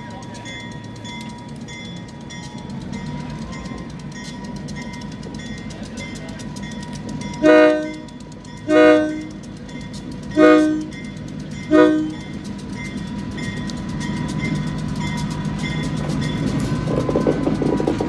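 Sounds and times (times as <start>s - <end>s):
diesel engine rumble: 0.0s - 18.0s
locomotive air horn blasts: 7.4s - 9.4s, 10.4s - 11.0s, 11.7s - 12.2s.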